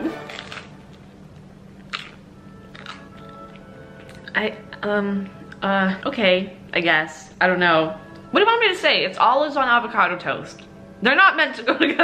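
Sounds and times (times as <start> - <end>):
person chewing: 0.0 - 1.2, 1.8 - 4.4
quiet background music: 0.0 - 12.0
toasted bread crunching: 0.1 - 1.1, 1.8 - 4.4.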